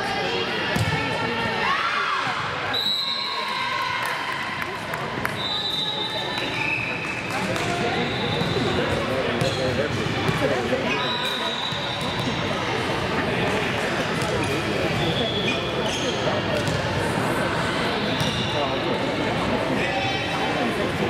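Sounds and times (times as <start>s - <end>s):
voices in echoing gym: 0.0s - 21.0s.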